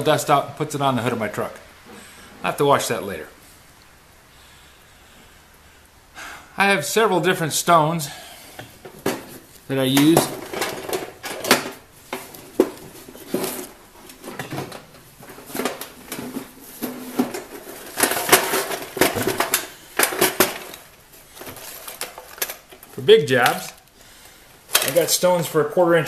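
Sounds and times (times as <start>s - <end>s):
small metal bits clicking and rattling: 16.8s - 24.0s.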